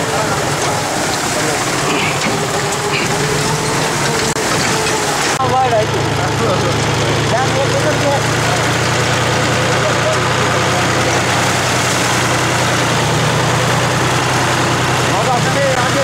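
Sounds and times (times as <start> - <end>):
vehicle engine humming: 0.0 - 16.0.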